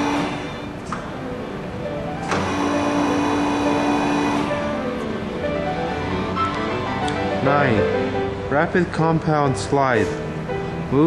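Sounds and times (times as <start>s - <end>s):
motor humming: 0.0s - 9.1s.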